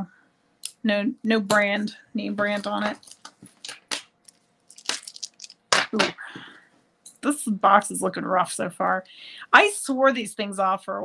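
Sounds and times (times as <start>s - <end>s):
jewelry clattering: 2.5s - 6.2s
beads and metal clicking: 2.7s - 5.9s.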